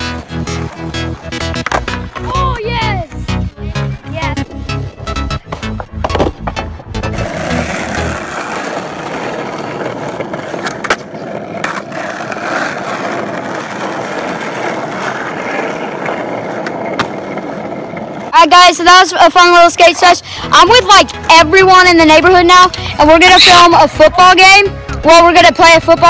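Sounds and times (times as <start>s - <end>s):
skateboard wheels on asphalt: 0.0s - 26.0s.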